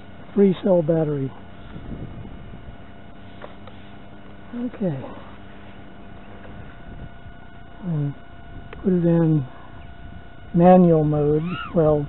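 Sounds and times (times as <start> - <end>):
faint constant hum: 0.0 - 12.0.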